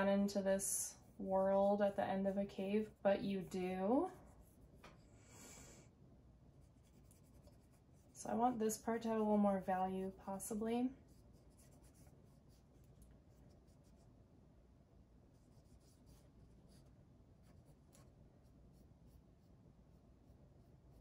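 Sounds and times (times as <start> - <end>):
cotton swab scratching on paper: 0.2 - 4.9, 6.5 - 14.2, 15.3 - 21.0.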